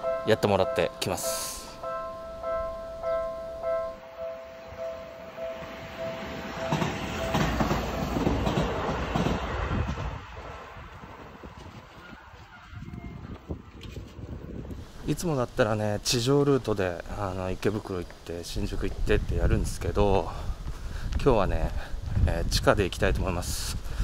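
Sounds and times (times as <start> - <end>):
level crossing warning bell: 0.0 - 8.0
electric train passing: 0.0 - 14.7.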